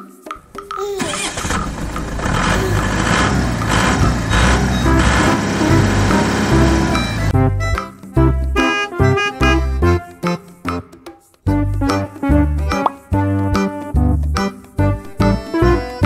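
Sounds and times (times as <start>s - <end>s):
light children's music: 0.0s - 3.0s, 3.6s - 16.0s
car engine sound effect: 0.8s - 7.3s.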